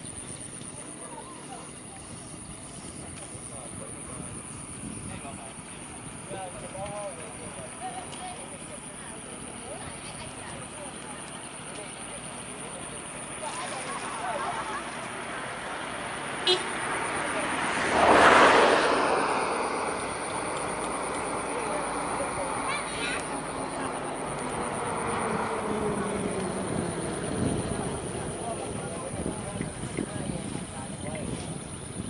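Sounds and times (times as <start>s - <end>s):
engine passing by: 0.0s - 32.0s.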